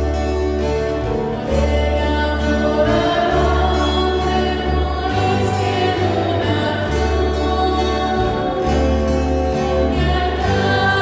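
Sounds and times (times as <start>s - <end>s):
instrumental accompaniment: 0.0s - 11.0s
choir singing a slow hymn: 1.3s - 11.0s.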